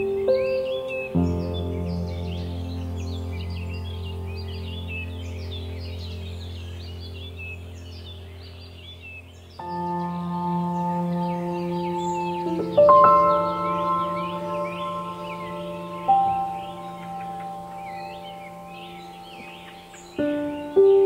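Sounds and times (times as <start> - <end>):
birds chirping: 0.0 - 21.0
calm ambient music chords: 0.0 - 21.0.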